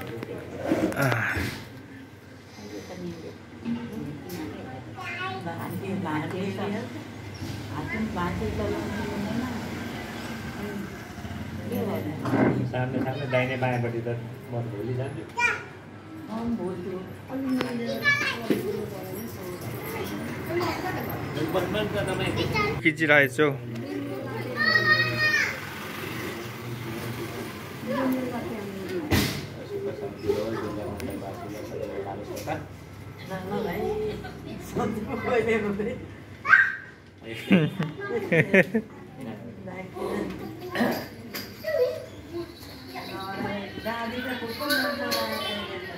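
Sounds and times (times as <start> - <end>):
adults talking quietly: 0.0 - 45.9
child's high-pitched calls: 36.4 - 37.0.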